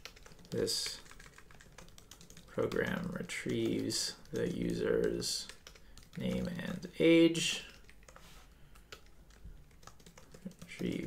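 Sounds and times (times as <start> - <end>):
keyboard typing clicks: 8.8 - 11.0.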